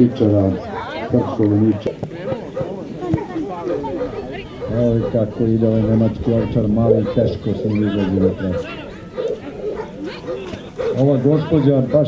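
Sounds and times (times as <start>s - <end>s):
crowd voices: 0.0s - 12.0s
dog barking: 2.2s - 2.8s, 3.5s - 12.0s.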